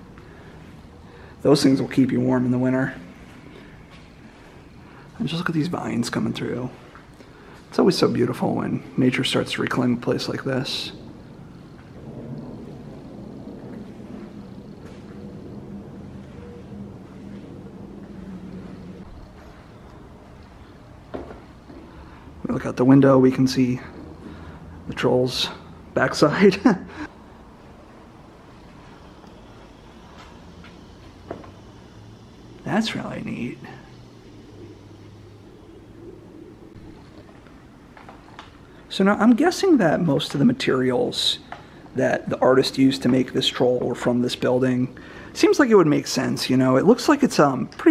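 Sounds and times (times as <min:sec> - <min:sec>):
low background rumble: 0:00.0 - 0:39.9
faint humming tones: 0:00.0 - 0:47.9.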